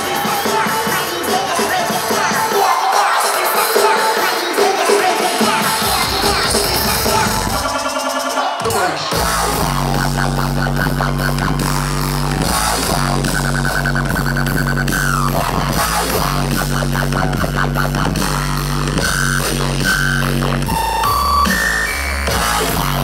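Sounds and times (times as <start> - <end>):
dubstep over concert speakers: 0.0 - 23.0
deep bass line: 5.8 - 7.9, 9.1 - 23.0.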